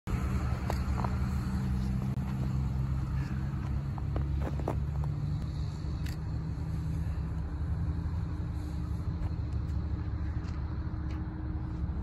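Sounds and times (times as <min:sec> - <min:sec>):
low engine rumble: 0:00.1 - 0:12.0.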